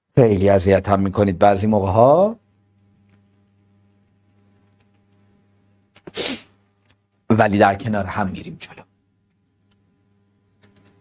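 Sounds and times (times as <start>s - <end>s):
man's sharp burst of breath: 6.0s - 6.6s.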